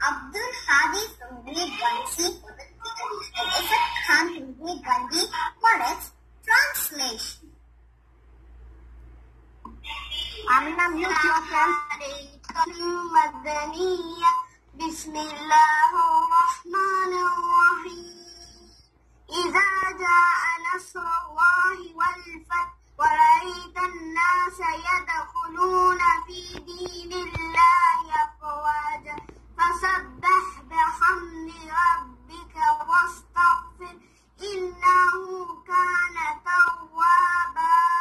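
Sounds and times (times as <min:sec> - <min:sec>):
boy chanting melodically: 0:00.0 - 0:07.5, 0:09.7 - 0:38.0.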